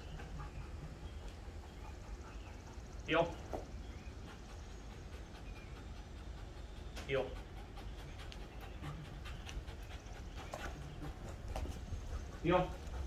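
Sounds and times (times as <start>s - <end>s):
dog panting: 0.0s - 13.0s.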